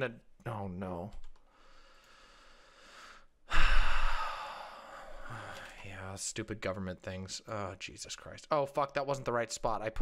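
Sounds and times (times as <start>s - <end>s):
faint intake of breath: 1.5s - 5.9s.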